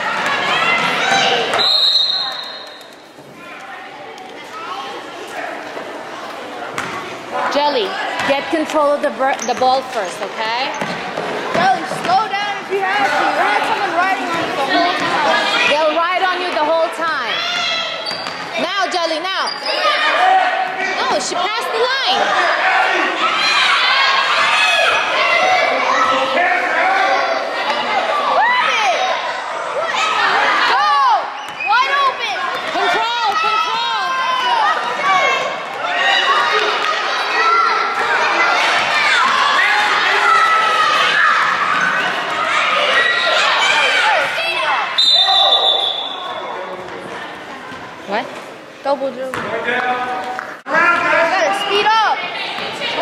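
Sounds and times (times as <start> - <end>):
people shouting in a gym: 0.0 - 2.8, 11.0 - 46.8.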